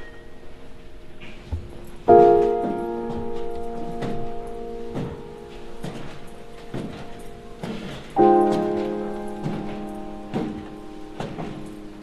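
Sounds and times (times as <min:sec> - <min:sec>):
footsteps on wooden stairs: 0:01.2 - 0:12.0.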